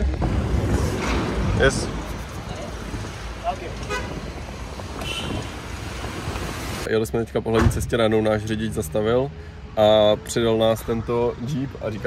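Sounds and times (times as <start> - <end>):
jeep engine rumbling: 0.0 - 12.0
horn toot: 3.8 - 4.3, 5.0 - 5.6.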